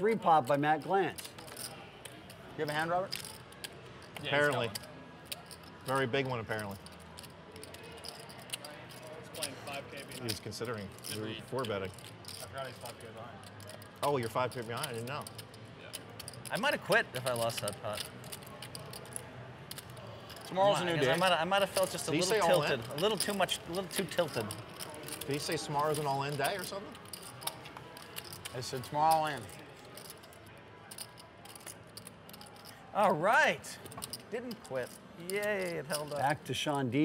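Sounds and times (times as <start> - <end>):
faint voices talking: 0.0 - 37.0
poker chips clicking: 0.3 - 32.8, 33.8 - 36.4.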